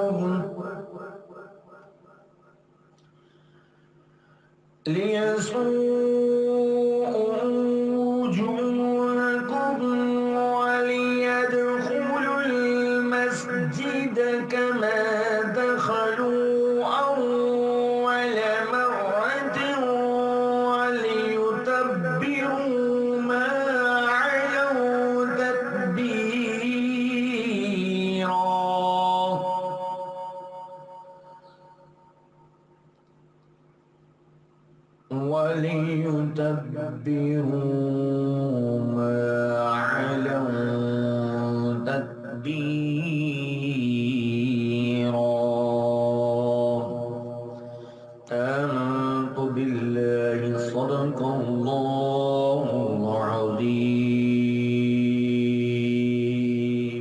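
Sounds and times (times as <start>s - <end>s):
person reciting melodically: 0.0s - 1.1s, 4.8s - 30.8s, 35.1s - 57.0s
man chanting: 0.0s - 1.2s, 4.8s - 30.7s, 35.1s - 57.0s.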